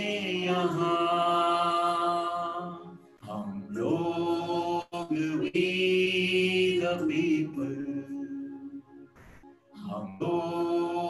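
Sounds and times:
man and woman singing unaccompanied: 0.0s - 8.7s, 9.8s - 11.0s.

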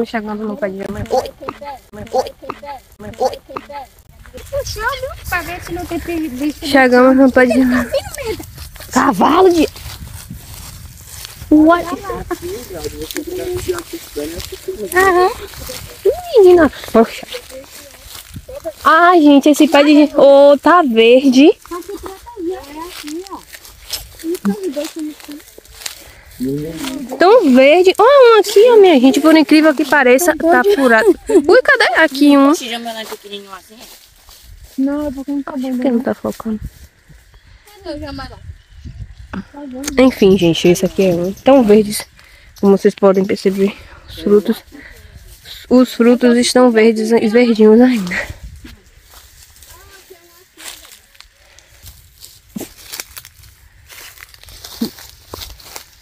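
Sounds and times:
people talking: 0.0s - 9.7s, 11.5s - 23.4s, 24.2s - 25.6s, 26.4s - 33.8s, 34.8s - 36.6s, 37.7s - 38.4s, 39.3s - 44.9s, 45.5s - 48.8s, 49.7s - 50.9s
faint voices talking: 21.4s - 33.2s.

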